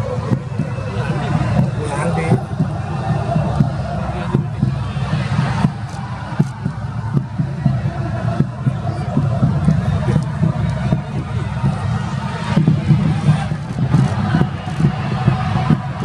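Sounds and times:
players and spectators shouting: 0.0 - 16.0.

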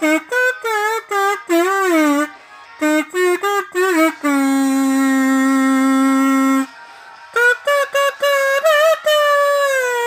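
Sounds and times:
kazoo note: 0.0 - 10.0.

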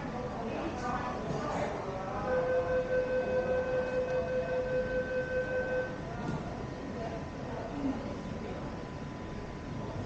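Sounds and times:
steady electronic signal tone: 2.2 - 6.1.

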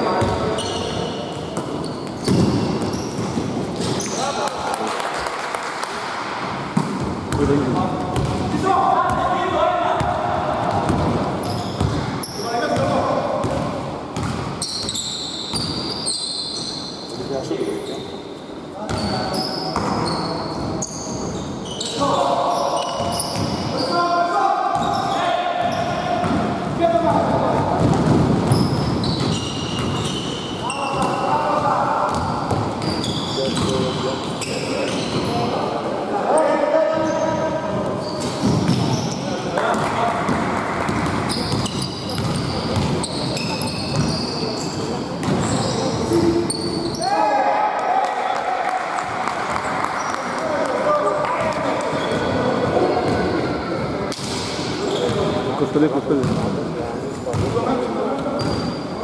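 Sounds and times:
sneaker squeaks: 0.0 - 4.5, 10.8 - 26.8, 28.4 - 35.6, 36.3 - 47.3, 49.5 - 50.4, 51.3 - 55.5, 56.2 - 56.6, 57.2 - 59.0.

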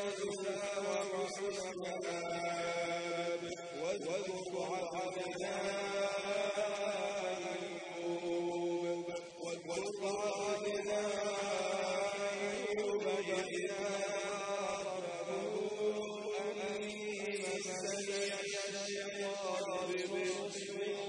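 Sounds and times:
man chanting recitation: 0.0 - 21.0.

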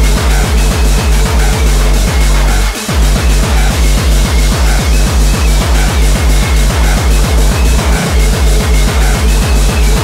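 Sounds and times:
distorted kick drum: 0.0 - 10.0.

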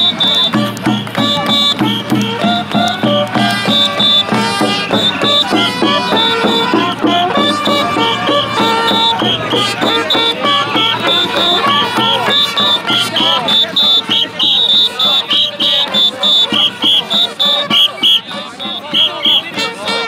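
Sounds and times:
crowd voices: 0.0 - 20.0
festival brass music: 0.0 - 20.0.

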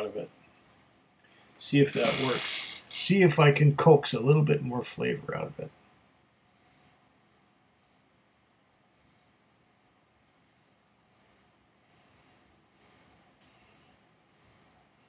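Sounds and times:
faint short sniffs: 2.0 - 3.0.

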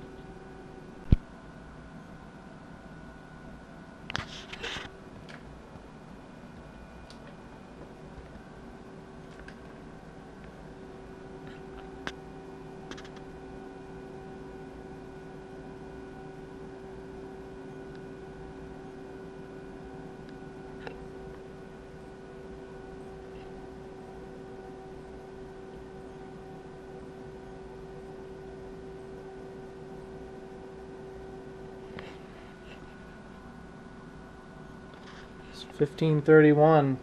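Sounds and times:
faint electrical hum: 0.0 - 37.0.

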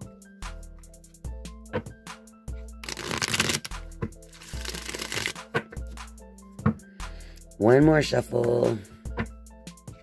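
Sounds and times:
soft background music: 0.0 - 10.0
cards riffling: 2.8 - 5.4.

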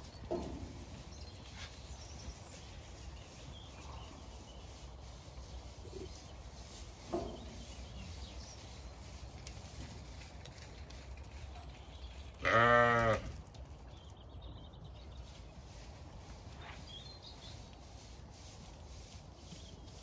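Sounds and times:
sheep bleating: 12.4 - 13.2.

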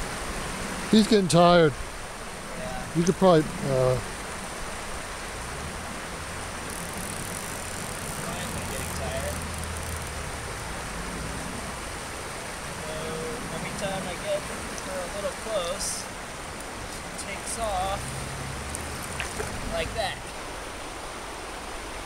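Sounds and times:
flowing stream water: 0.0 - 22.0.

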